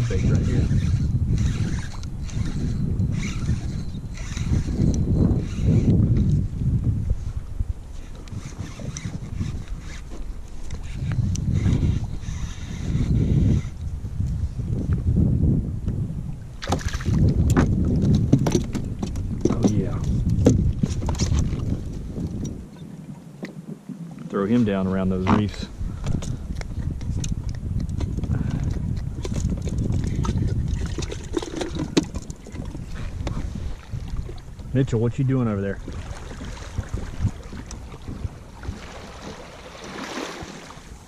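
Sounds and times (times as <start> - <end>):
water against kayak hull: 0.0 - 15.1, 15.8 - 41.0
wind rumbling on microphone: 0.0 - 41.0
fishing tackle clicks and knocks: 16.6 - 22.6, 25.2 - 33.4.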